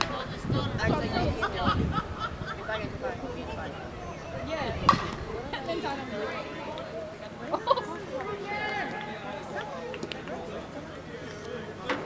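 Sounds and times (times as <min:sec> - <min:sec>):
bat hitting ball crack: 0:04.8 - 0:05.2.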